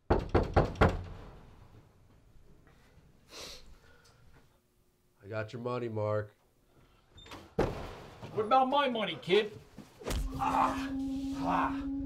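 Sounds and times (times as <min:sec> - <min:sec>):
knocks on a door: 0:00.0 - 0:01.1.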